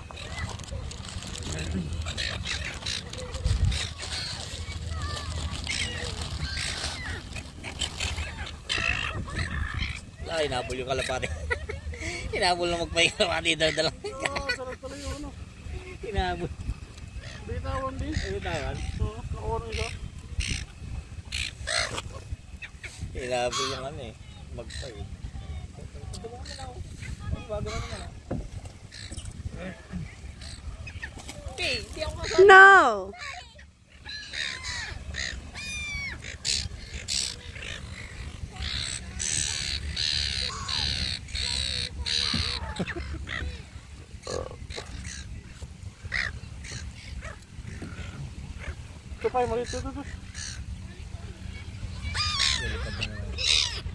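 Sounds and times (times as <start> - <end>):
gulls squawking: 0.0 - 53.9.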